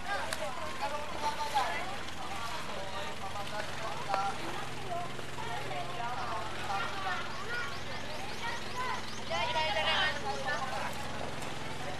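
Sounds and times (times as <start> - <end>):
boat engine humming: 0.0 - 11.9
people talking and calling: 0.0 - 11.9.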